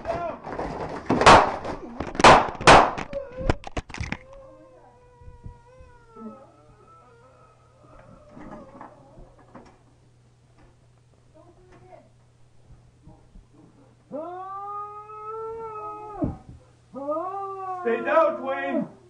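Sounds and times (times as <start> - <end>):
wooden door being smashed: 0.0 - 3.1.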